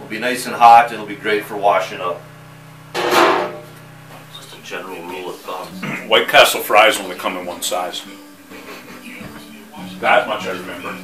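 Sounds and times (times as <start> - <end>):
faint music: 0.0 - 11.0.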